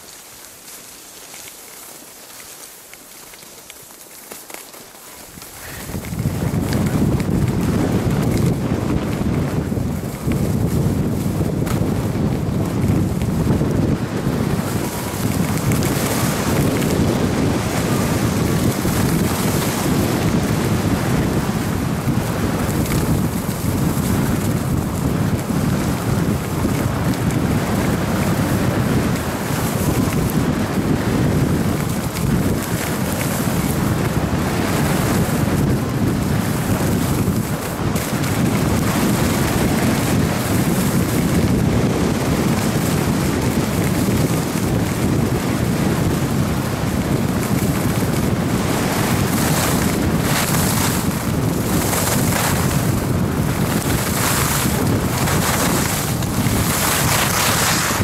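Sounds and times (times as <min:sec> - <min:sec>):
skis scraping on packed snow: 0:00.0 - 0:58.0
wind buffeting microphone: 0:05.2 - 0:58.0.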